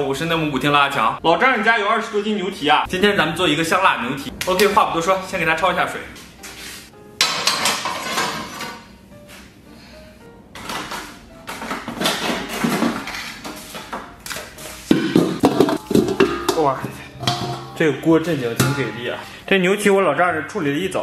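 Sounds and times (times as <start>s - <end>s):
background music: 0.0s - 21.0s
metal tongs clanking on metal: 15.0s - 19.3s.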